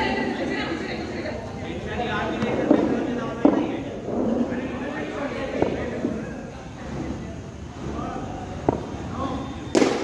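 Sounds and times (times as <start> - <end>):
faint voices: 0.0 - 9.8
loud crack: 9.8 - 10.0.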